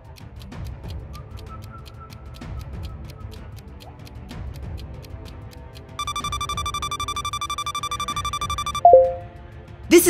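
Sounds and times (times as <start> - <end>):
pulsing electronic timer ring: 6.0 - 9.2
time-up sound dropping in pitch: 6.0 - 9.3.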